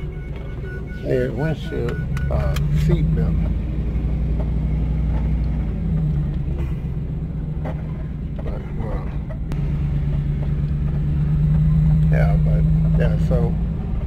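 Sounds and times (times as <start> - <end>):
van engine and road noise: 0.0 - 14.0.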